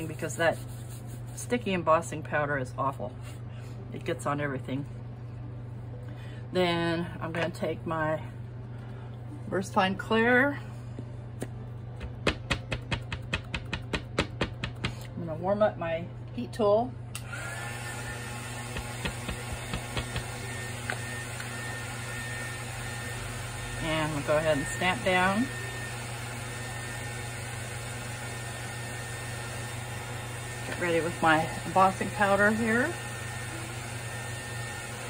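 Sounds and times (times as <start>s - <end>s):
steady low hum: 0.0s - 17.3s
heat tool blower whirring: 17.1s - 35.0s.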